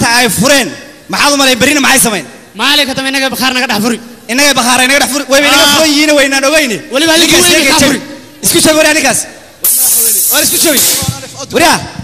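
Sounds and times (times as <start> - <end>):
loud steady hiss: 0.0 - 12.0
man's voice: 0.0 - 12.0.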